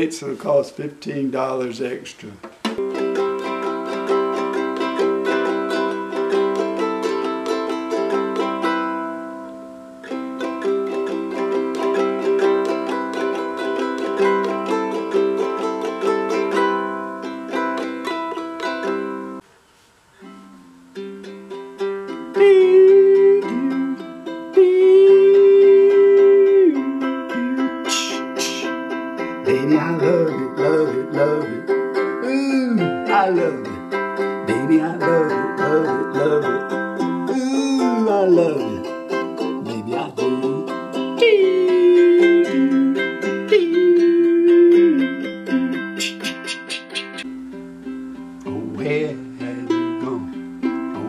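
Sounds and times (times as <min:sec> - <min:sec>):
ukulele strumming chords: 0:00.0 - 0:19.5, 0:20.1 - 0:51.0
man singing long notes: 0:21.5 - 0:47.3, 0:48.4 - 0:51.0.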